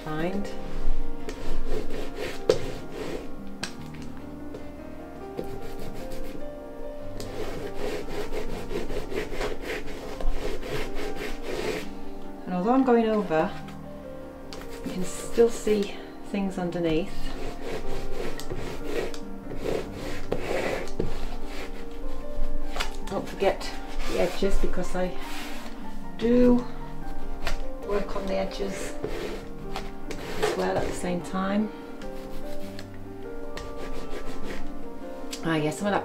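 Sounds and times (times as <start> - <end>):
background music: 0.0 - 36.0
paint roller rubbing on canvas: 0.3 - 3.4, 5.4 - 6.5, 7.2 - 12.0, 17.0 - 31.3, 32.1 - 32.9, 33.6 - 34.8.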